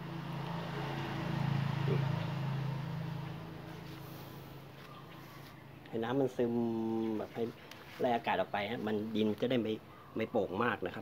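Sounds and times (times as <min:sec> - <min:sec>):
vehicle passing: 0:00.0 - 0:05.7.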